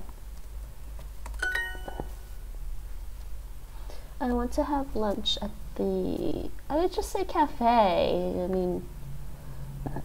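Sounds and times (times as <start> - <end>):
rising bell-like chime: 1.4 - 2.3.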